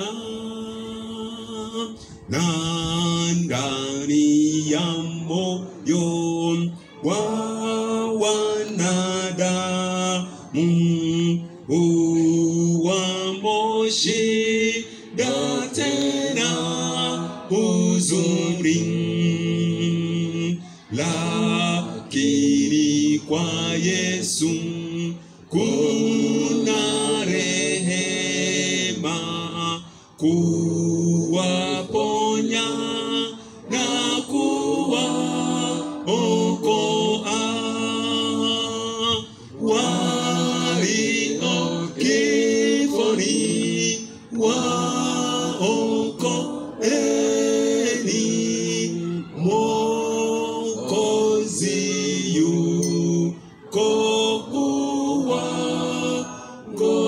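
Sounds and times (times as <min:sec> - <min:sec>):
man singing hymn unaccompanied: 0:00.0 - 0:57.0.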